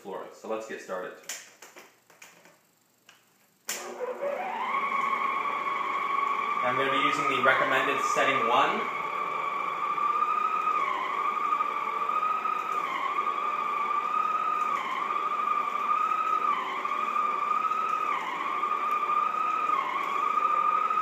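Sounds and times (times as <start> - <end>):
floor cleaner motor whine: 3.6 - 21.0.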